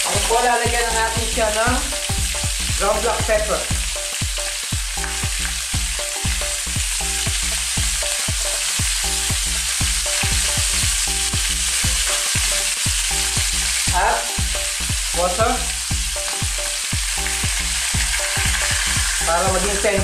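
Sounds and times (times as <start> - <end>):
meat sizzling in hot oil: 0.0 - 20.0.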